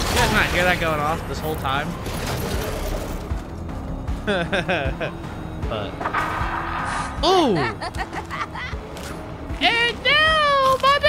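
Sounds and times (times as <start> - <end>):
background music: 0.0 - 11.0
man speaking and laughing: 7.2 - 8.7.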